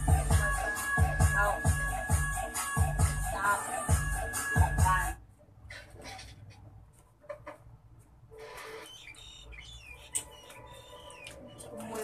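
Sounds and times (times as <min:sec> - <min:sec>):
birds chirping: 0:08.7 - 0:12.0.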